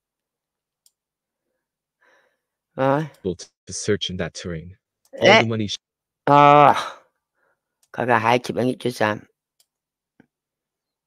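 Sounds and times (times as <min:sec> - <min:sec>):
person speaking: 0:02.8 - 0:06.9.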